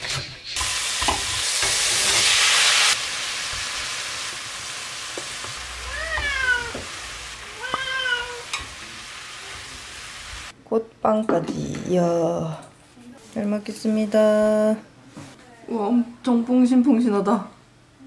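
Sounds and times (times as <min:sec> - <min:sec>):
vegetables sizzling in a pot: 0:00.0 - 0:10.6
cat meowing: 0:05.7 - 0:08.5.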